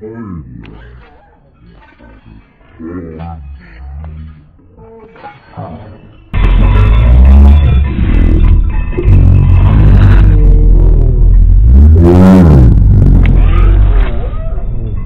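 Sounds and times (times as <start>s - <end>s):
deep steady rumble: 6.4s - 15.0s.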